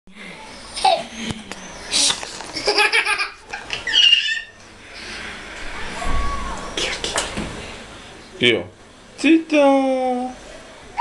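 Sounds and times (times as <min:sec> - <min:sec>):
toddler laughing and squealing: 0:02.7 - 0:04.6.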